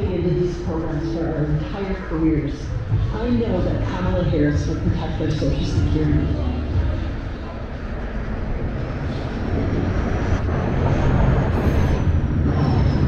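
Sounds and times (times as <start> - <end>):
bus approaching: 0.0 - 13.0
heavy street traffic rumbling: 0.0 - 13.0
faint high whine: 3.5 - 13.0.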